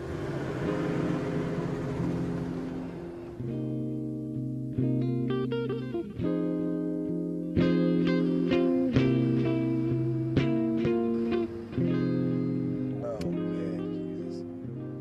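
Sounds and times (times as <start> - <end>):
film score music with guitar: 0.0 - 15.0
plucked chords: 0.0 - 15.0.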